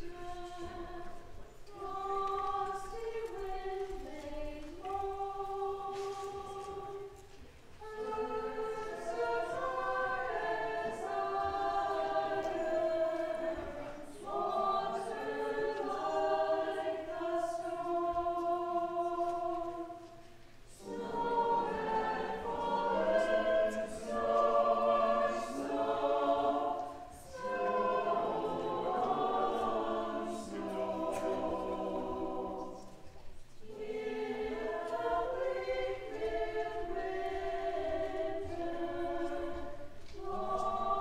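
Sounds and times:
mixed choir singing: 0.0s - 41.0s.

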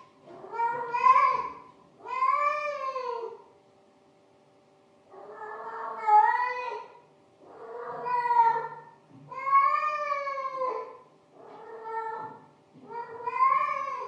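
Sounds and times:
cat meowing: 0.3s - 3.4s, 5.2s - 6.9s, 7.5s - 14.0s.

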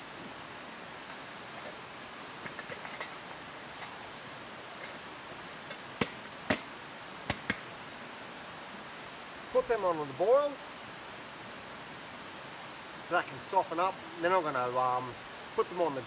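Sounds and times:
campfire hissing and crackling: 0.0s - 16.0s
sharp pops from fire: 5.7s - 7.7s.

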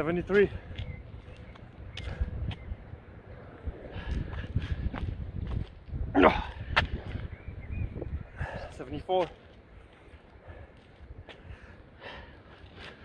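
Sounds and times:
man breathing hard: 3.7s - 5.1s, 8.3s - 8.8s, 10.4s - 13.0s
man grunting: 6.1s - 6.6s.

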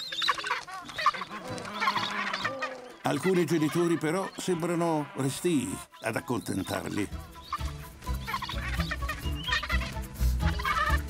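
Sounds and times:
penguin chicks begging calls: 0.0s - 11.0s
soft music: 6.1s - 11.0s.

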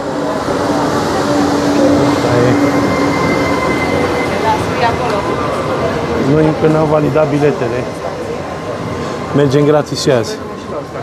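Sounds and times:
train rumble with low hum: 0.0s - 11.0s
high brake squeal: 0.7s - 5.6s.

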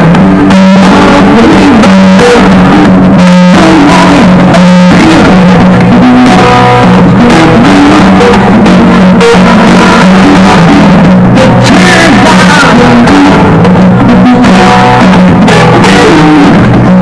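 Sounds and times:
acoustic guitar music through speakers: 0.0s - 17.0s.

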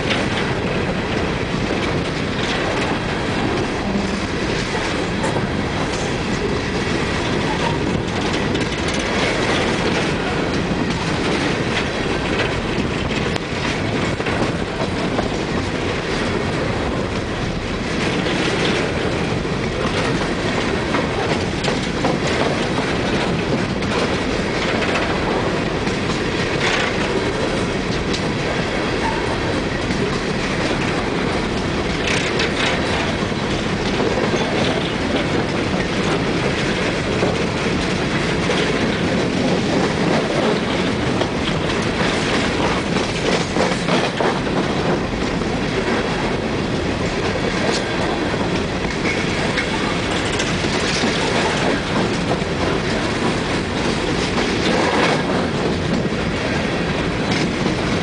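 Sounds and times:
steel wheels rumbling on rail: 0.0s - 58.0s.

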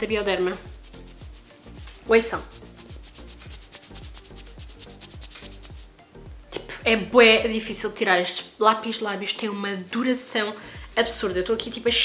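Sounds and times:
wet wipe scrubbing lips: 0.7s - 5.9s.

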